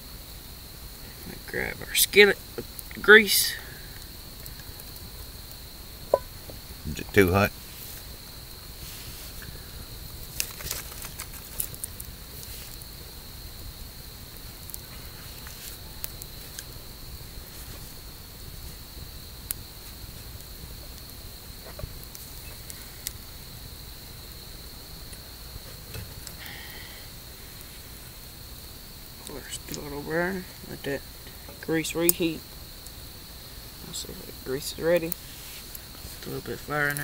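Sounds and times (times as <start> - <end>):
campfire crackling and popping: 0.0 - 37.0
night insects chirring: 0.0 - 37.0.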